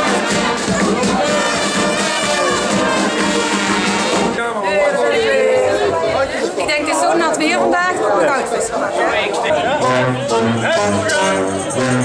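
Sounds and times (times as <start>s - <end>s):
crowd chatter in a hall: 0.0s - 12.0s
woman talking: 6.6s - 8.9s.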